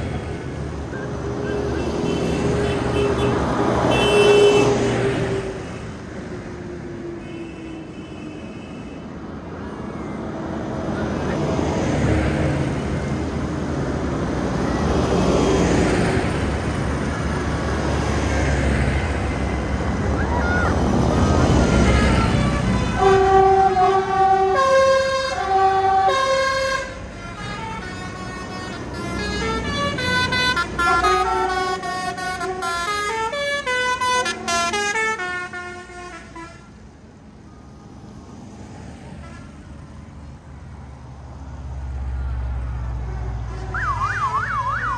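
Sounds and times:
tractor engines rumbling: 0.0s - 44.9s
horn-like tune: 22.5s - 26.8s.

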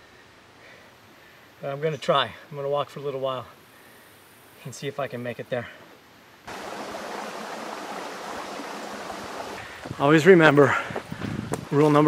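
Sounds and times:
shallow stream flowing: 6.5s - 9.9s.

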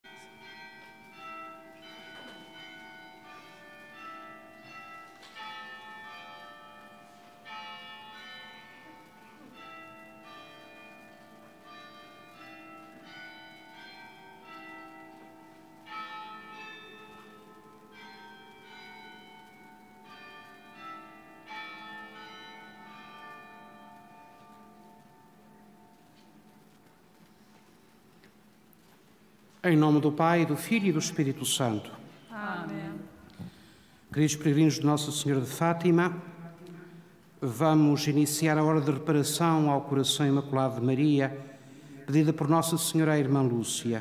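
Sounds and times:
church bells playing a slow tune: 0.0s - 44.0s.

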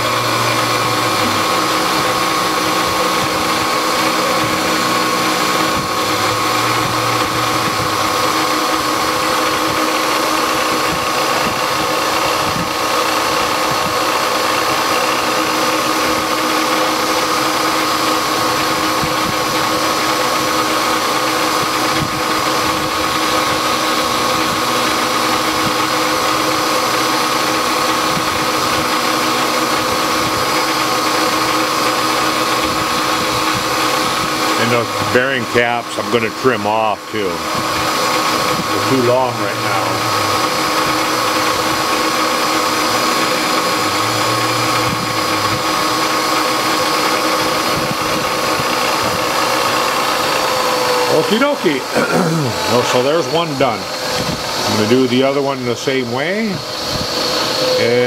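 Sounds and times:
metal cutting noise: 0.0s - 58.0s
milling machine whine: 0.0s - 58.0s.

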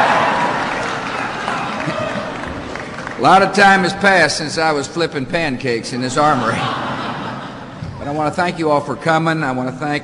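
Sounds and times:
audience laughing: 0.0s - 3.1s, 6.0s - 8.4s
audience clapping: 0.0s - 4.3s.

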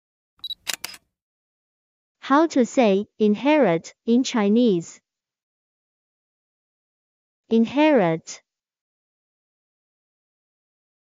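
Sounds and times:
sharp clicks: 0.4s - 1.0s.

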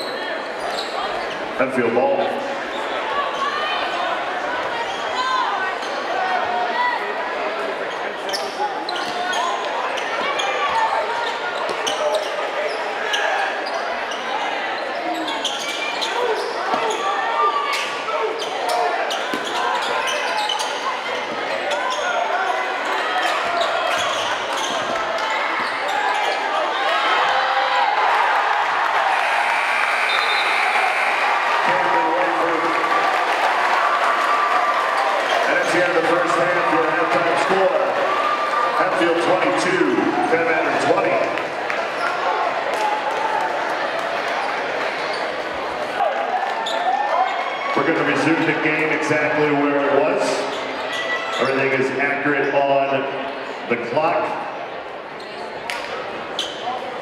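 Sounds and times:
crowd chatter: 0.0s - 57.0s.

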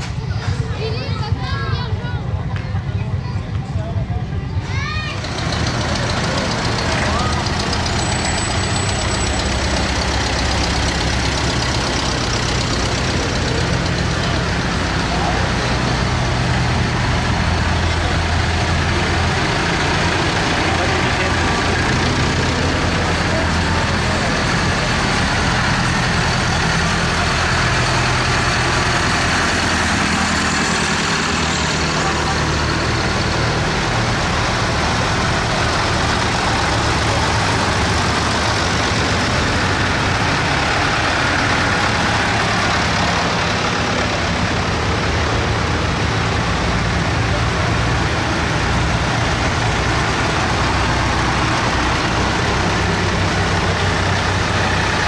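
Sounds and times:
tractor engines running: 0.0s - 55.0s.

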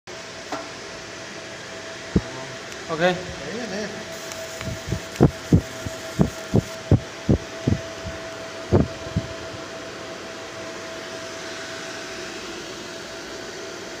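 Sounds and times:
cooling fan hum with whine: 0.1s - 14.0s.

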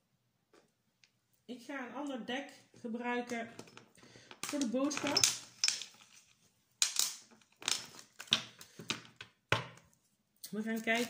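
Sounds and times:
cards rustling and knocking on wood: 3.6s - 9.9s.

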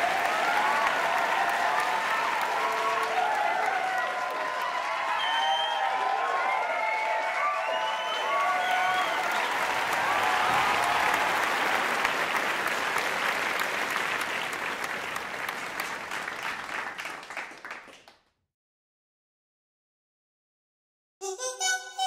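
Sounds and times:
cheers and whoops: 0.0s - 11.9s
audience applauding: 0.0s - 18.3s.

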